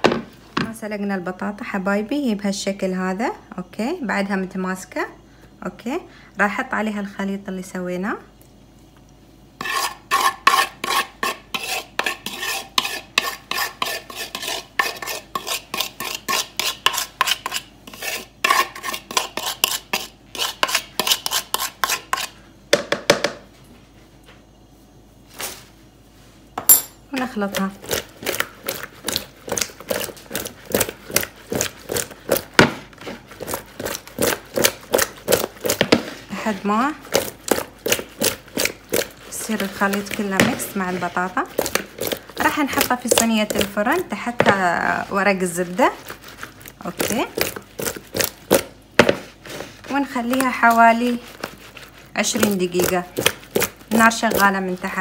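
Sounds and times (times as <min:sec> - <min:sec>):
metal spoon scraping wooden bowl: 0:09.6 - 0:22.4, 0:27.5 - 0:55.0
spoon clinks: 0:26.6 - 0:27.0.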